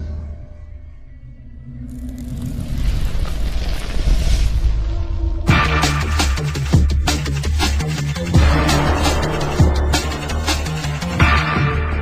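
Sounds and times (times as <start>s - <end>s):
deep cinematic rumble: 0.0s - 6.8s.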